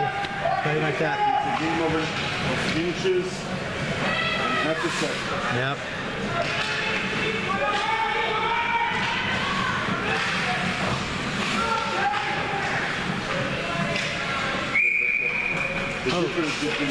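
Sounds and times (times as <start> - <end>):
spectators' voices echoing: 0.0 - 16.9
hockey sticks and puck knocks: 6.4 - 8.2
referee's whistle blast: 14.7 - 15.9.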